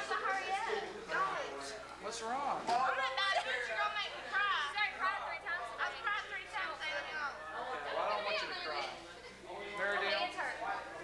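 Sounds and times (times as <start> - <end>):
girls chattering: 3.0 - 11.0.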